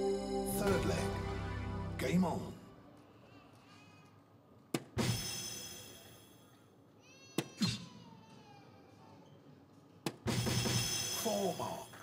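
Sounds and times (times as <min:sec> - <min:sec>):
game music: 0:00.0 - 0:03.0.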